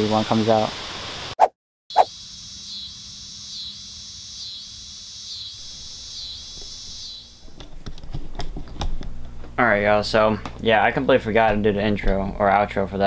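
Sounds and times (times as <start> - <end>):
insects chirping: 1.9 - 7.6.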